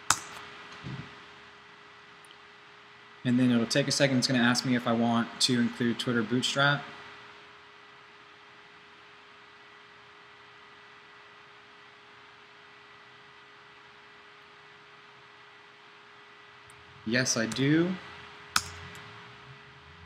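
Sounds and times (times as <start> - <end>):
faint constant hum: 0.0 - 20.0
steady recording hiss: 0.0 - 20.0.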